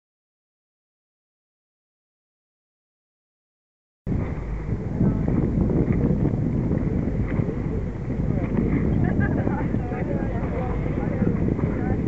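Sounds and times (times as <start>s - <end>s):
wind buffeting microphone: 4.1s - 12.0s.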